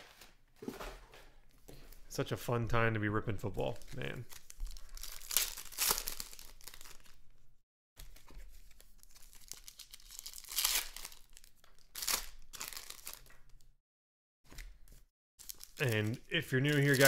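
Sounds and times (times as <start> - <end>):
card wrappers tearing and crinkling: 3.7 - 7.2, 8.0 - 13.6, 14.5 - 17.0.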